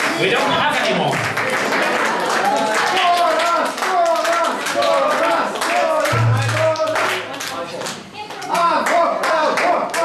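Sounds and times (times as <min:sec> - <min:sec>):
audience clapping: 0:00.0 - 0:10.0.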